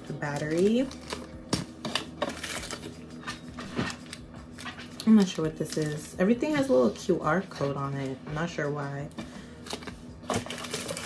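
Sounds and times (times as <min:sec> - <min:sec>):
plastic bags crinkling: 0:00.0 - 0:06.6, 0:09.4 - 0:11.0.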